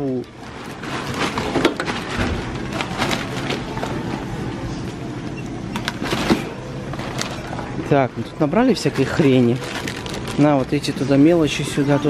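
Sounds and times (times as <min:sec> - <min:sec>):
bags rustling: 0:00.0 - 0:04.6, 0:05.8 - 0:11.7
steady low hum: 0:00.0 - 0:12.0
clicks and knocks of goods: 0:00.1 - 0:04.3.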